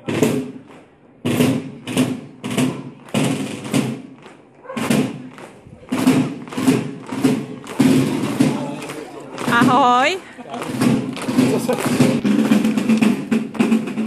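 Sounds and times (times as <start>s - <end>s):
marching drums: 0.0s - 14.0s.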